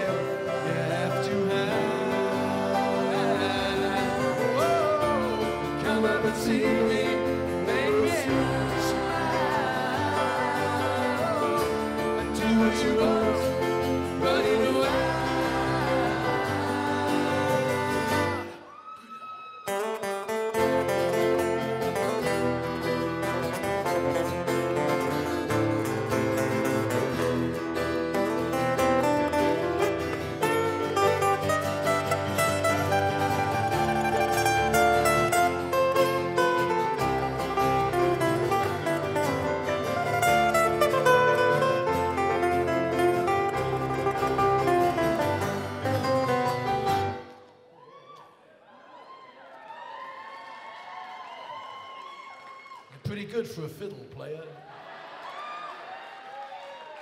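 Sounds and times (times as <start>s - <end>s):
acoustic band playing: 0.0s - 18.8s, 19.6s - 47.7s.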